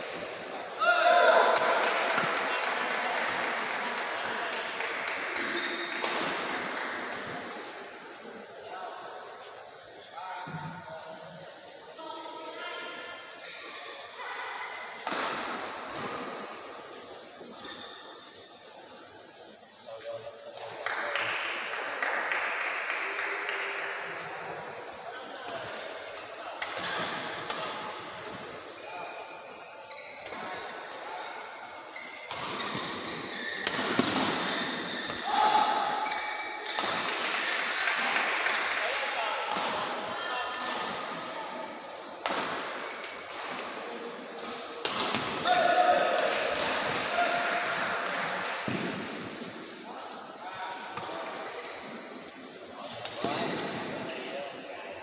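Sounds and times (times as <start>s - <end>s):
racket hitting shuttlecock: 32.3s - 35.4s, 44.4s - 47.2s.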